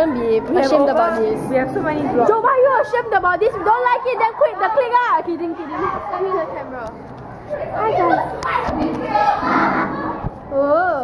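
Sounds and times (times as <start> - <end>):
girls shouting and shrieking: 2.2 - 6.7, 7.6 - 11.0.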